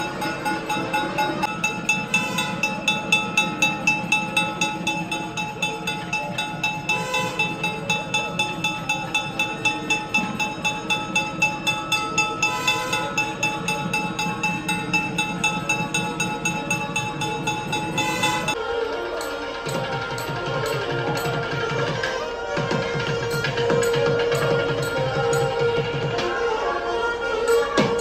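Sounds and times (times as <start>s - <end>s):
temple bell ringing rapidly: 0.0s - 26.5s
temple music: 0.0s - 28.0s.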